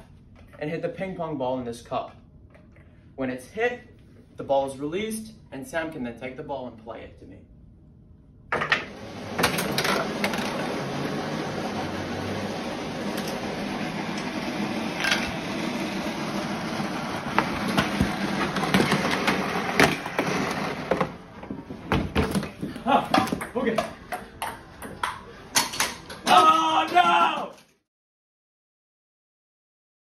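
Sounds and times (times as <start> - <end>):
objects falling and clattering: 17.4 - 23.4.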